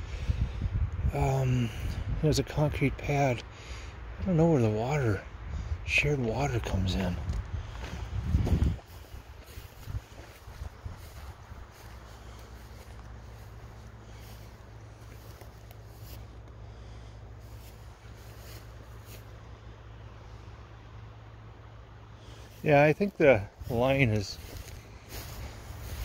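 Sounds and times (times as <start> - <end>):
wind rumbling on microphone: 0.0 - 19.0, 22.2 - 26.0
faint rustles: 7.0 - 20.7, 22.0 - 26.0.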